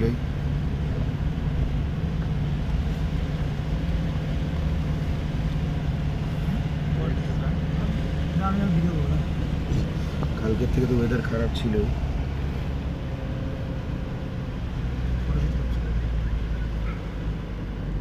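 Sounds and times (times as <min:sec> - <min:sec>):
car engine and tyre drone: 0:00.0 - 0:18.0.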